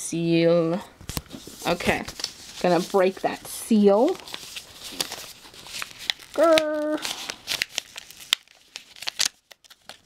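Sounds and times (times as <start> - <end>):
paper rustling and crinkling: 1.0 - 10.0.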